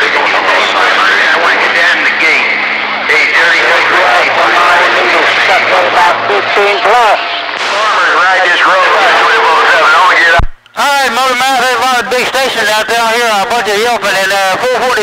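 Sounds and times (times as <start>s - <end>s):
garbled radio voices: 0.0s - 15.0s
radio static: 0.0s - 15.0s.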